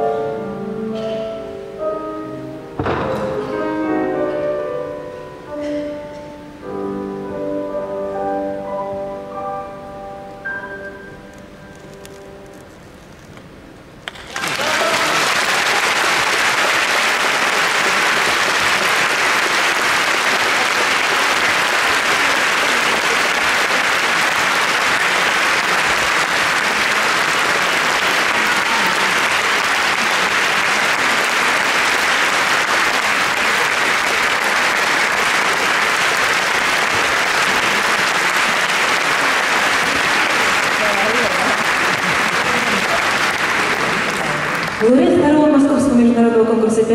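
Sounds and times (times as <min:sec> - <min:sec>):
audience applauding: 0:14.0 - 0:45.2.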